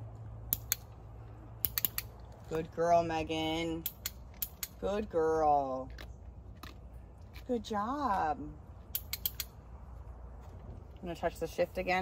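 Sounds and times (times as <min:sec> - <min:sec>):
steady low hum: 0:00.0 - 0:12.0
training clicker clicks: 0:00.5 - 0:01.0, 0:01.6 - 0:02.4, 0:03.8 - 0:04.8, 0:08.9 - 0:09.6.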